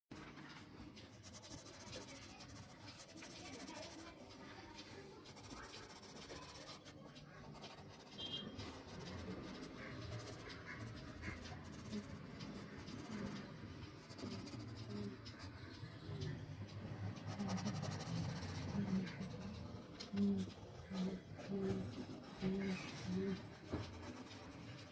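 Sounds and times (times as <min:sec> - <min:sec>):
pencil scratching on paper: 0:00.2 - 0:16.4, 0:17.0 - 0:24.9.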